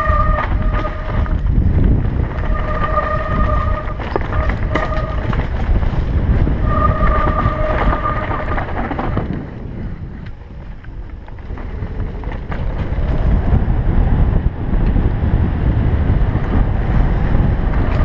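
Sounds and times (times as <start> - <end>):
bike tyres and frame rattling: 0.0 - 18.0
high whine from bike: 0.0 - 18.0
wind buffeting microphone: 0.0 - 18.0.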